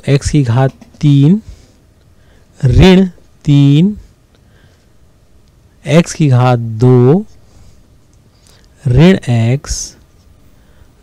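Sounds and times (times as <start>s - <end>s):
person speaking: 0.0s - 1.7s, 2.5s - 4.2s, 5.8s - 7.4s, 8.8s - 10.1s
faint room hiss: 0.0s - 11.0s.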